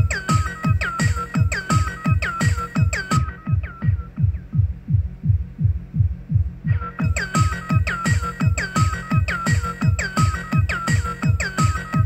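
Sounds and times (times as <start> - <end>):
hi-hats and synth: 0.0 - 5.9, 6.8 - 12.0
techno drum machine kick drum: 0.0 - 12.0.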